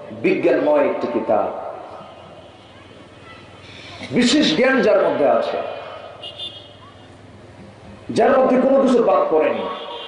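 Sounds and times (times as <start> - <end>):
man speaking over loudspeaker: 0.0 - 2.0, 4.1 - 6.2, 8.1 - 10.0.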